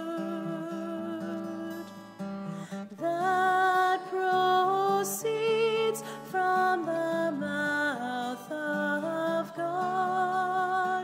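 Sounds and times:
woman singing a hymn: 0.0s - 2.0s, 2.9s - 11.0s
acoustic guitar chords: 0.0s - 11.0s.

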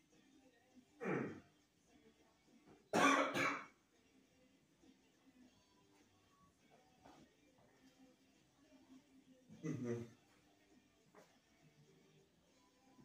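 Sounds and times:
faint background music: 0.0s - 13.0s
man coughing: 9.6s - 10.1s.

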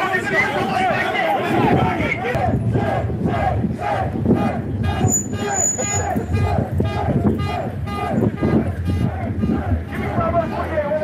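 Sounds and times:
men chanting and shouting: 0.0s - 11.0s
high whistle-like tone: 5.1s - 6.1s.

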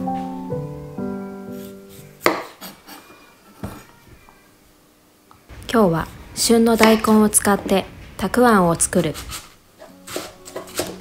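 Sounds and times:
music: 0.0s - 2.3s, 9.8s - 11.0s
knife chopping on wooden board: 2.2s - 2.8s, 10.1s - 11.0s.

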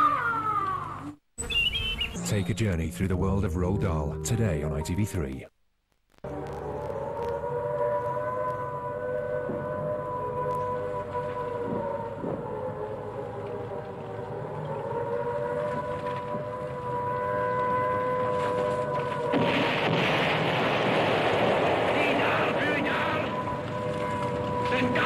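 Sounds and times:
air-raid siren: 6.2s - 25.0s.

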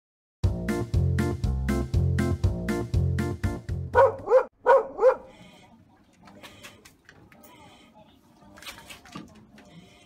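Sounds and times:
small dog barking: 4.0s - 5.4s.

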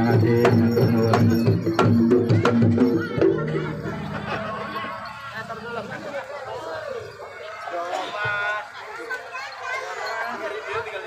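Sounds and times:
hand drums: 0.0s - 4.9s
metallophones and gongs: 0.0s - 5.9s.

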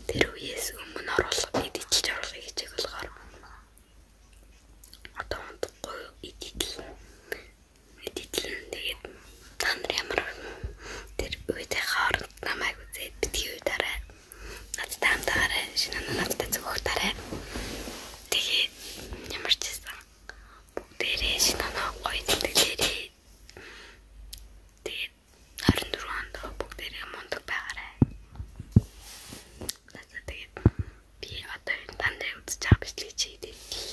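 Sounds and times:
girl whispering: 0.1s - 3.7s, 5.0s - 10.4s, 11.2s - 14.1s, 14.8s - 17.3s, 18.3s - 23.1s, 24.8s - 28.0s, 29.9s - 30.6s, 31.2s - 33.6s.

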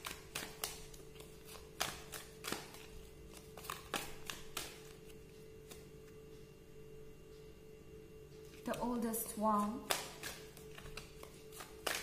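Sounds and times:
cards shuffling: 0.0s - 6.0s, 9.9s - 12.0s.

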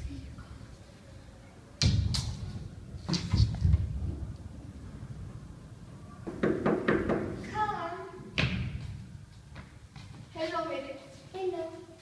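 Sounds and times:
child's voice: 7.4s - 8.3s, 10.4s - 12.0s.

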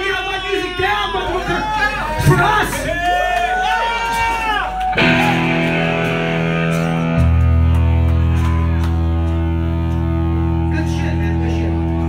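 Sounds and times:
people shouting and whooping: 0.0s - 10.7s
bass guitar low note: 5.0s - 12.0s
electric guitar chord ringing: 5.0s - 12.0s.

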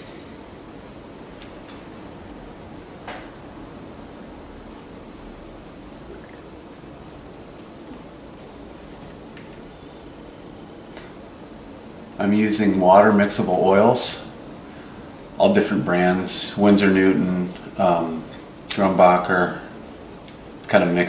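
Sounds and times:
faint high-pitched whine: 0.0s - 21.0s.

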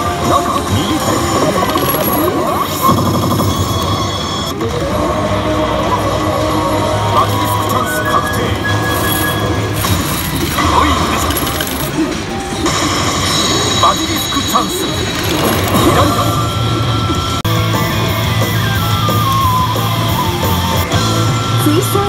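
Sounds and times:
slot machine music: 0.0s - 21.9s.

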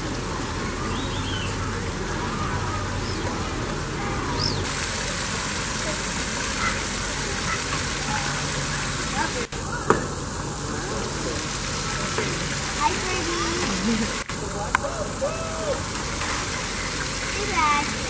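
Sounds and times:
distant voices: 0.0s - 18.0s
steady outdoor hiss: 0.0s - 18.0s.

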